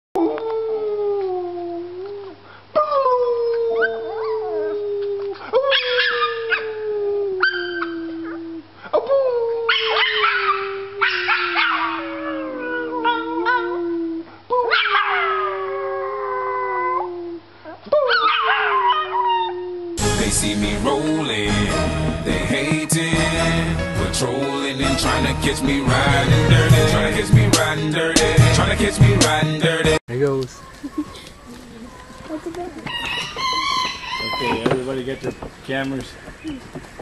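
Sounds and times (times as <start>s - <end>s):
puppy howling: 0.2s - 20.0s.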